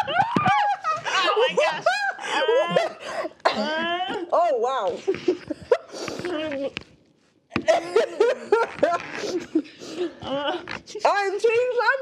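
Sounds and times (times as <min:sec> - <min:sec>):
women laughing and exclaiming: 0:00.0 - 0:03.0.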